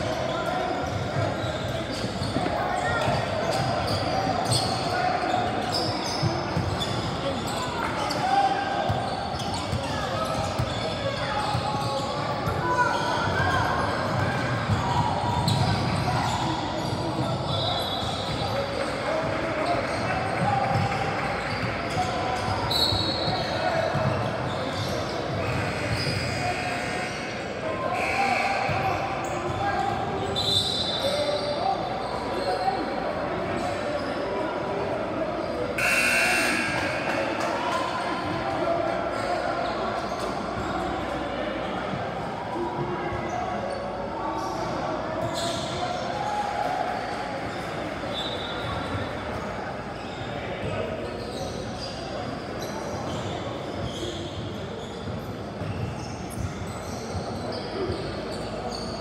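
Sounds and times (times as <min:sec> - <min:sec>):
sneakers squeaking: 0:00.0 - 0:59.0.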